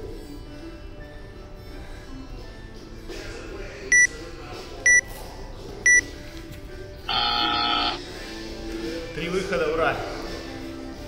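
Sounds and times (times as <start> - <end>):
long buzzer tone: 7.1 - 8.0.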